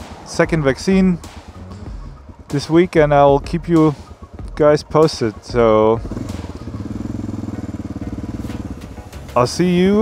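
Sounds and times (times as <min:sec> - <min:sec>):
single-cylinder engine running: 0:01.8 - 0:10.0.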